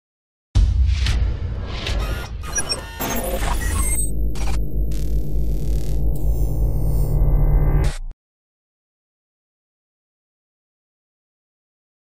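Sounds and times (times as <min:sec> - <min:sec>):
deep bass drone: 0:03.2 - 0:08.1.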